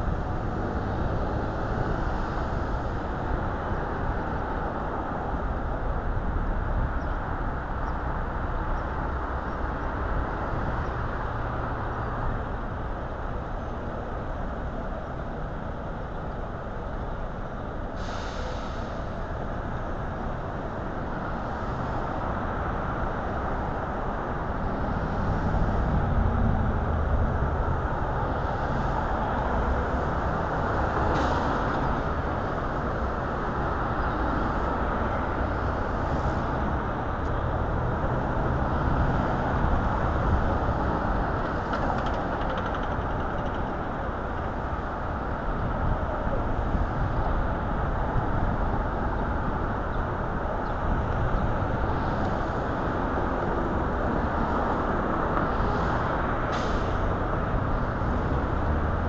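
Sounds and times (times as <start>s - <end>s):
cars passing: 0.0s - 59.0s.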